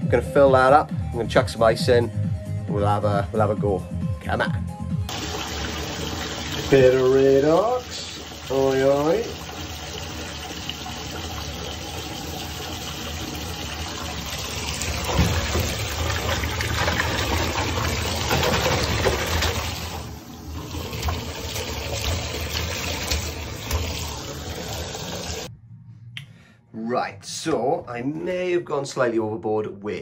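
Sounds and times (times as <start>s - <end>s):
bath tap running into bathtub: 5.1s - 25.5s.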